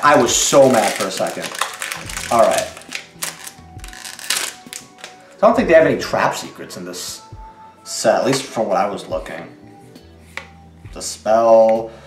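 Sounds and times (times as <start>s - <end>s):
crisp card snaps: 0.0s - 5.3s
quiet background music: 0.0s - 12.0s.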